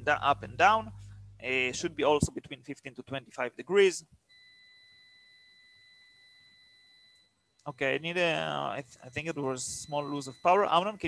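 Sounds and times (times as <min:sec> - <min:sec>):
high-pitched electronic tone: 0:04.4 - 0:11.0.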